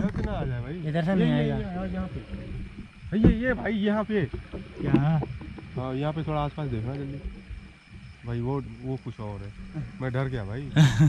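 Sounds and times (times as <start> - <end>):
men speaking: 0.0 - 7.4, 8.2 - 11.0.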